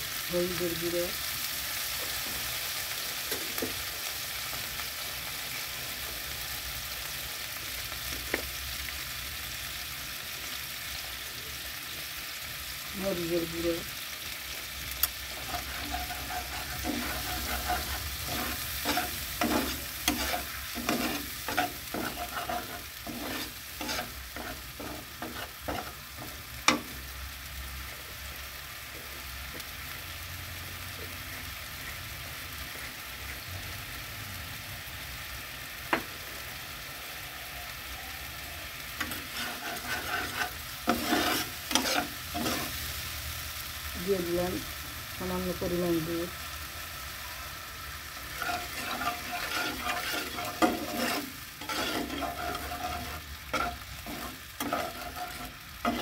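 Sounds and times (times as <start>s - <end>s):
paste sizzling in oil: 0.0s - 56.0s
spatula scraping pan: 15.0s - 27.0s, 39.0s - 43.0s, 48.1s - 56.0s.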